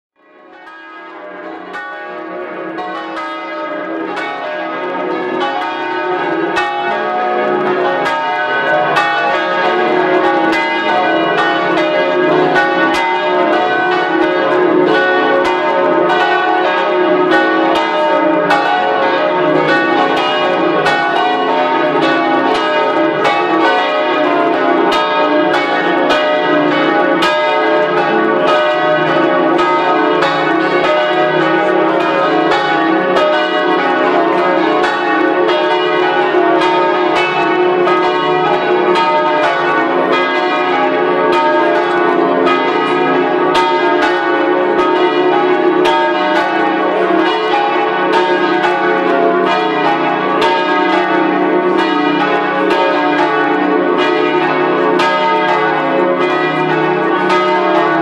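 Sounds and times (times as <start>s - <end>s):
church bells pealing: 0.2s - 58.0s.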